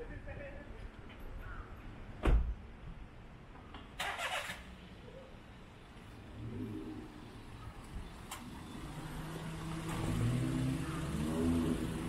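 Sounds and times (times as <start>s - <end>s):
faint outdoor background sound: 0.0s - 12.0s.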